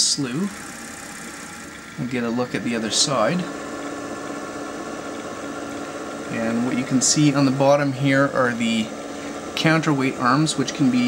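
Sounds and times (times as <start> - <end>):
drive motor and gearing humming: 0.0 - 11.0.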